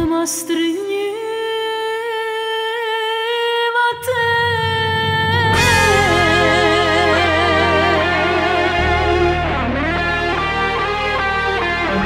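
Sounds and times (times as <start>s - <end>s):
woman singing a long note: 0.5s - 8.8s
sparse backing music: 4.0s - 12.0s.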